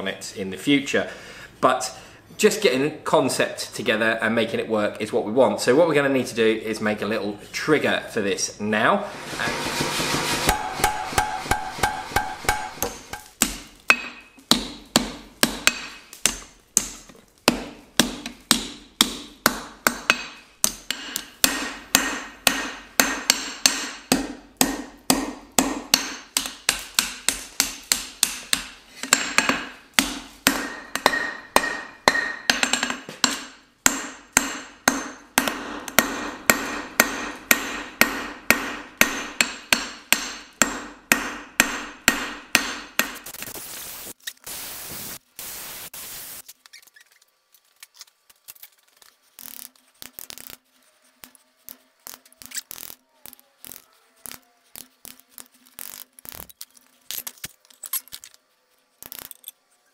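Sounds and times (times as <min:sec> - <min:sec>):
hammer striking steel on anvil: 0:09.7 - 0:16.9, 0:17.5 - 0:43.2
anvil ringing: 0:10.4 - 0:13.3, 0:30.5 - 0:40.8.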